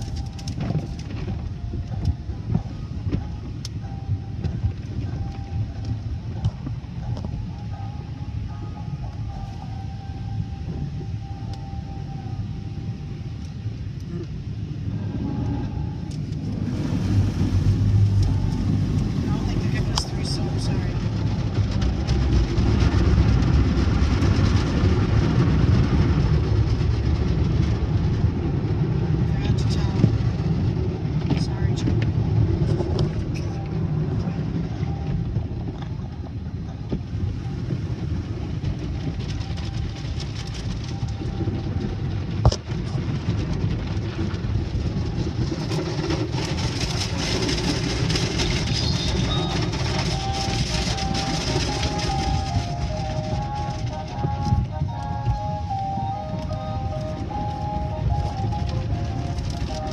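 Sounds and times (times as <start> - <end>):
car wash brushes and water spray: 15.8 - 35.5.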